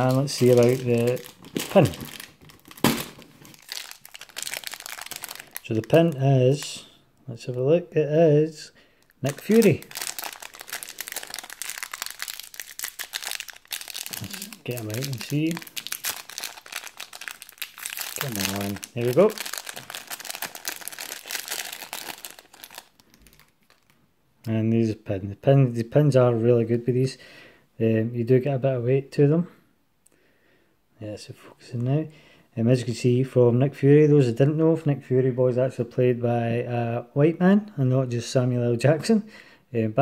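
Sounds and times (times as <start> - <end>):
plastic bag crinkling: 0.0 - 6.8, 9.2 - 24.0.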